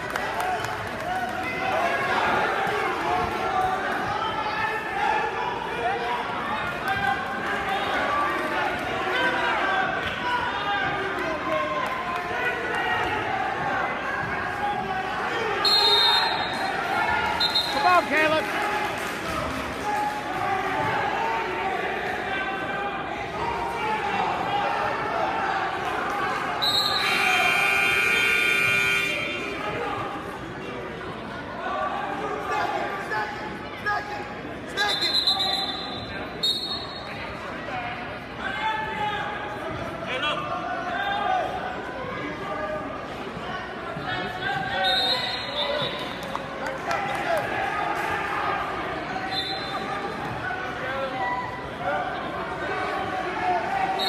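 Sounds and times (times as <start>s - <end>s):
crowd chatter in echoing hall: 0.0s - 54.0s.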